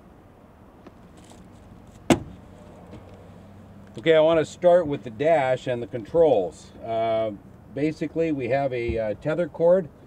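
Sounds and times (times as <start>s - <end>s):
faint steady background noise: 0.0s - 10.0s.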